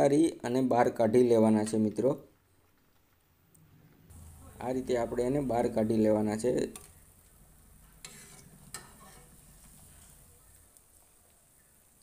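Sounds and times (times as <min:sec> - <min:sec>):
faint sizzle of frying in oil: 0:04.1 - 0:12.0.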